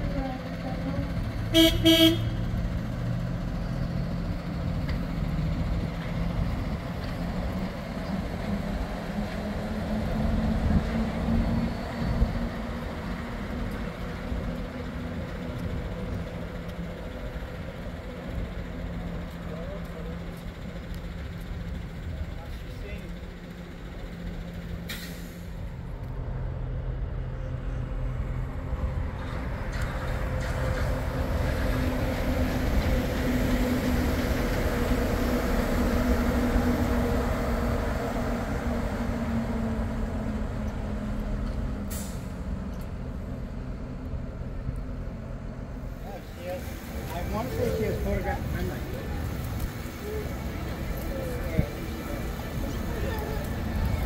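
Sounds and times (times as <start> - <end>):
monorail train electric hum: 0.0 - 54.0.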